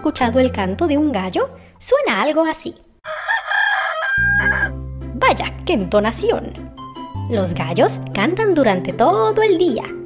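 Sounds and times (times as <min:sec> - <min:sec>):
rooster crowing: 0:03.0 - 0:04.8.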